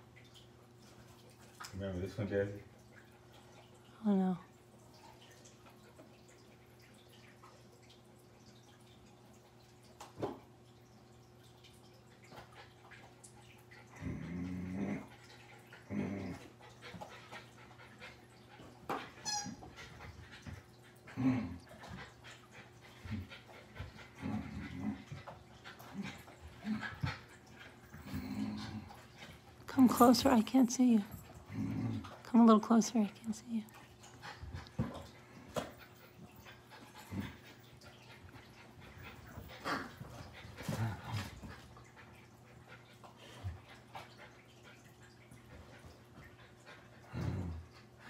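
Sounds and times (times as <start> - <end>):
puppies playing: 12.2 - 48.0
dog growling: 13.9 - 16.6, 21.1 - 21.8, 24.1 - 25.2, 27.8 - 29.0, 31.4 - 32.2, 47.0 - 47.8.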